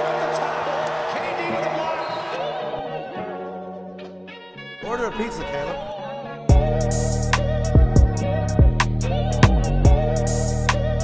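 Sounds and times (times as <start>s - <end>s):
hip-hop beat with sampled vocals: 4.8s - 11.0s.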